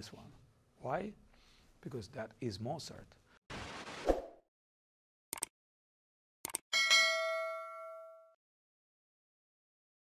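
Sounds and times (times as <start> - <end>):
notification bell ding: 6.8 - 8.4.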